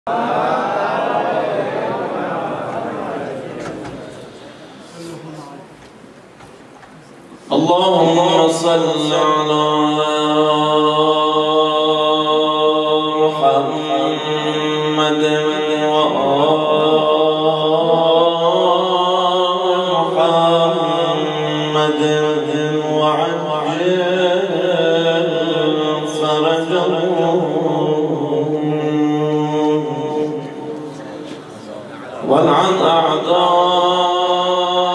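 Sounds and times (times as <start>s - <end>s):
man chanting into a microphone: 7.4s - 34.9s.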